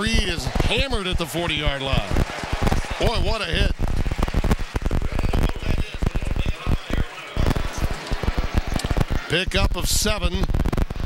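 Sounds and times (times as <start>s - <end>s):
broadcast audio crackling: 0.0s - 11.0s
stadium sound: 0.0s - 11.0s.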